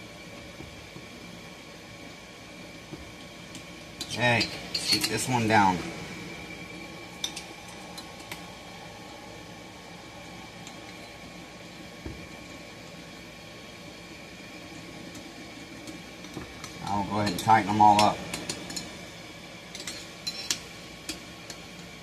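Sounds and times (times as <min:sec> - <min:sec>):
steady background hum: 0:00.0 - 0:22.0.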